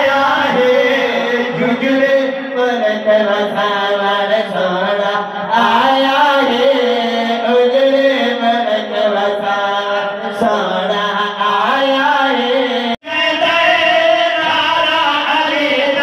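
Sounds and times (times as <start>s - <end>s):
men chanting through loudspeaker: 0.0s - 16.0s.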